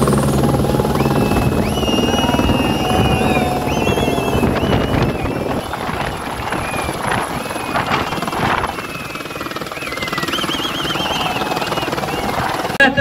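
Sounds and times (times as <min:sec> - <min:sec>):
helicopter rotor beating: 0:00.0 - 0:13.0.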